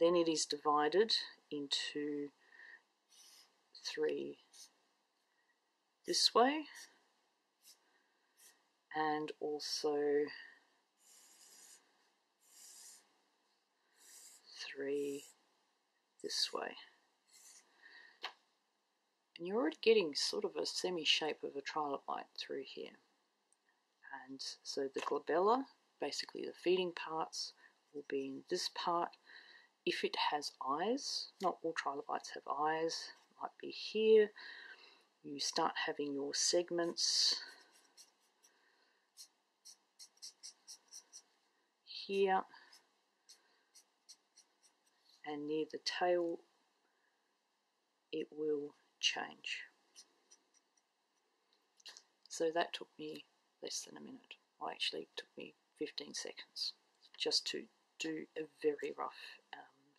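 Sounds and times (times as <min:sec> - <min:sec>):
marker scratching on paper: 0:03.1 - 0:03.6, 0:04.4 - 0:04.8, 0:07.6 - 0:07.8, 0:08.4 - 0:08.6, 0:11.0 - 0:13.1, 0:13.9 - 0:15.4, 0:17.3 - 0:17.7, 0:36.8 - 0:41.4, 0:42.7 - 0:45.2, 0:49.9 - 0:51.3.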